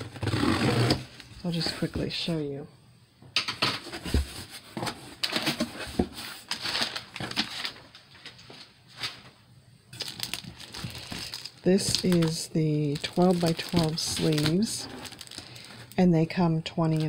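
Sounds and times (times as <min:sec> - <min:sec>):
cardboard box scraping: 0:00.0 - 0:01.1
paper and plastic rustling: 0:03.6 - 0:16.0, 0:16.7 - 0:17.0.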